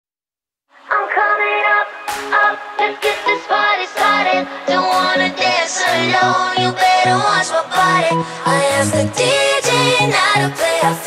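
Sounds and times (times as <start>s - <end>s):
person singing dance-pop song: 0.8s - 11.0s.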